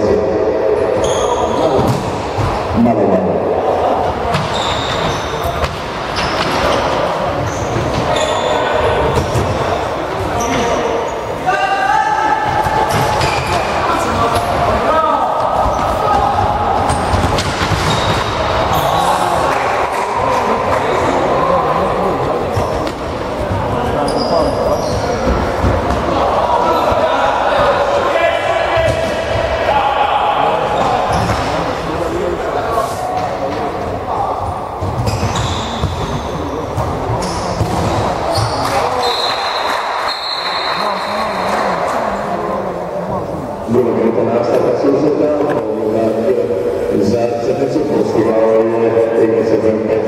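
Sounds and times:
players shouting: 0:06.6 - 0:33.2.

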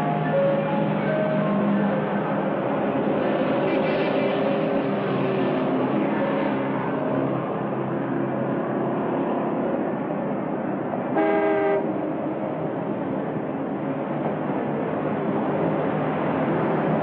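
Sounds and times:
vehicle running noise: 0:00.0 - 0:17.0.

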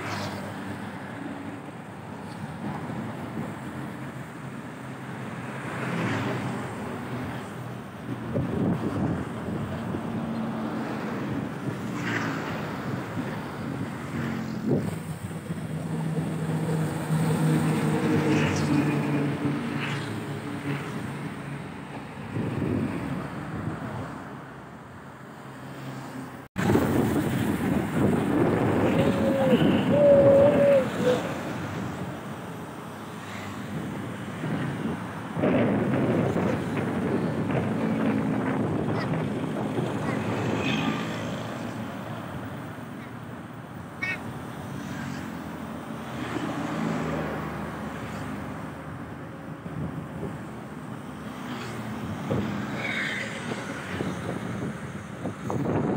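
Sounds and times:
buses and trucks passing: 0:00.0 - 0:55.9
wind on microphone: 0:06.7 - 0:24.4, 0:26.6 - 0:32.3, 0:33.4 - 0:43.4, 0:47.0 - 0:55.9.

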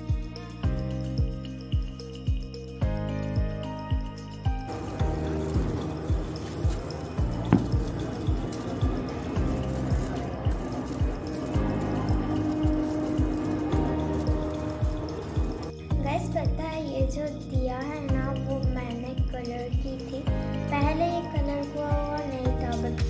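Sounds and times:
background music with steady beat: 0:00.0 - 0:23.0
sparkler hissing and crackling: 0:04.7 - 0:15.9
girl speaking: 0:15.9 - 0:23.0.

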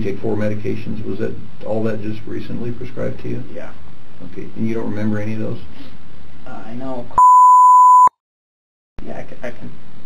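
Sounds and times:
censor bleep tone: 0:07.2 - 0:08.2.

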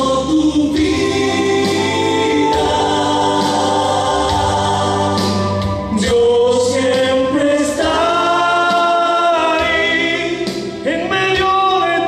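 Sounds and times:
man singing into a microphone: 0:00.0 - 0:02.6, 0:05.9 - 0:12.0.

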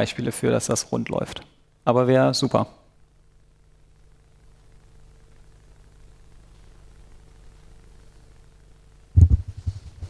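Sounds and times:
faint room hum: 0:00.0 - 0:10.0
microphone handling thumps: 0:09.1 - 0:10.0.

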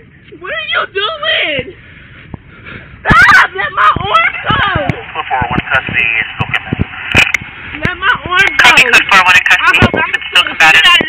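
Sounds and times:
voices talking: 0:00.0 - 0:11.0.

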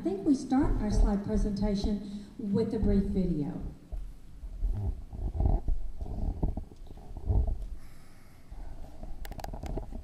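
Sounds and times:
camera handling rumbles: 0:09.0 - 0:10.0.

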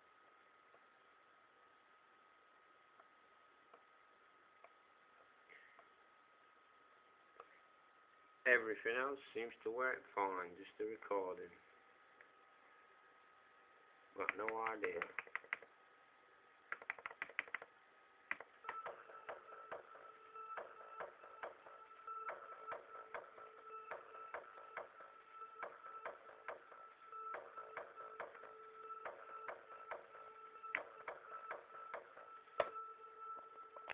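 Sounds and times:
clicking electronic percussion: 0:18.3 - 0:32.8
held synth tones: 0:18.6 - 0:33.9.

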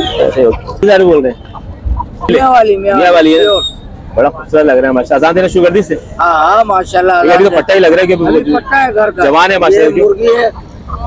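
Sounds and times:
hen clucking: 0:00.2 - 0:02.7, 0:10.2 - 0:11.0.

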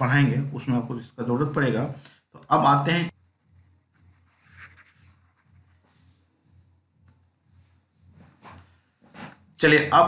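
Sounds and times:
stylus scratching on drawing tablet: 0:03.1 - 0:08.2.

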